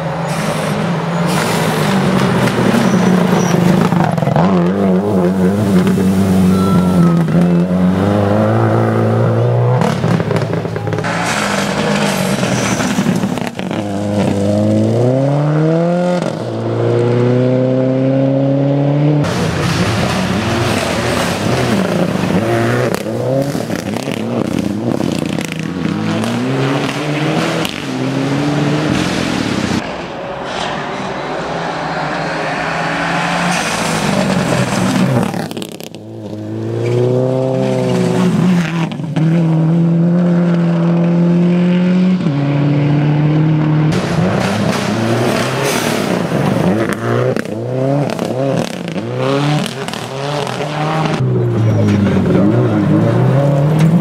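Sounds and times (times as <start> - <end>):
gravel under tyres: 0.0 - 15.1, 29.4 - 39.2
rally car engines revving: 0.0 - 54.0.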